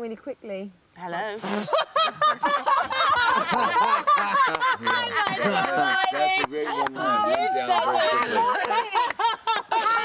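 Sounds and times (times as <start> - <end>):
group of people laughing: 1.4 - 10.0.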